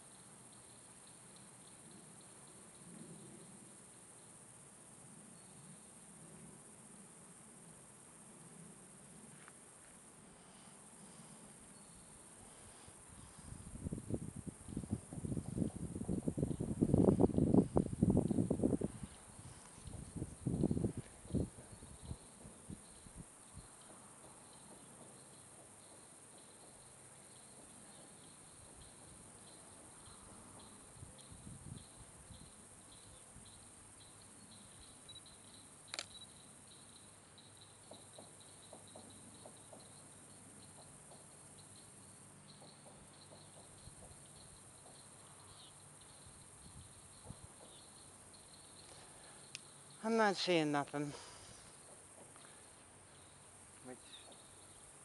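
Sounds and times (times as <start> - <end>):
insects chirping: 0.0 - 55.0
sharp click: 35.9 - 36.2.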